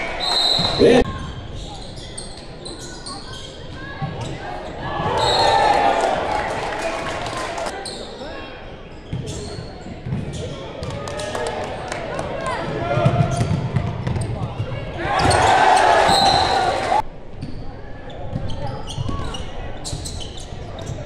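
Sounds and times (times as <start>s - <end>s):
spectators' voices and shouts: 0.0s - 1.4s, 3.6s - 8.8s, 14.6s - 17.0s.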